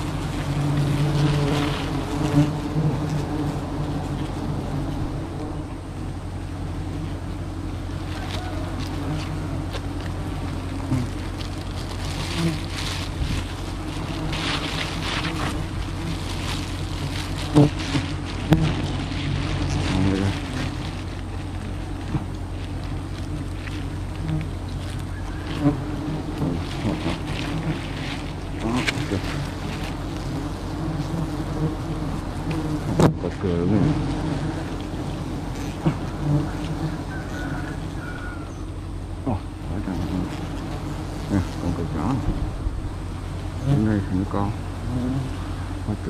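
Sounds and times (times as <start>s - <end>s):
bees buzzing: 0.0s - 46.0s.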